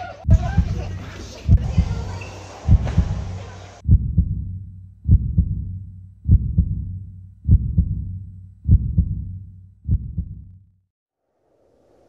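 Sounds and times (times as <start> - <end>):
heartbeat thumps: 0.2 - 10.6.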